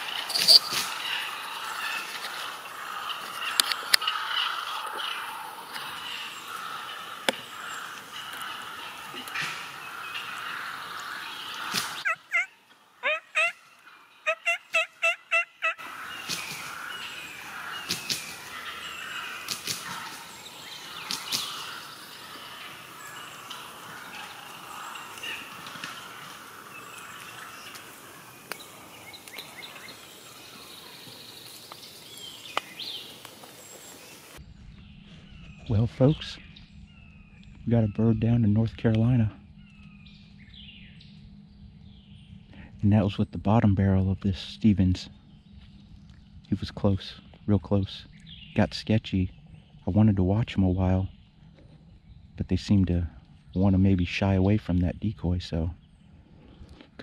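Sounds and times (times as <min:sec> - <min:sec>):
turkey gobbling: 0:00.0 - 0:31.0.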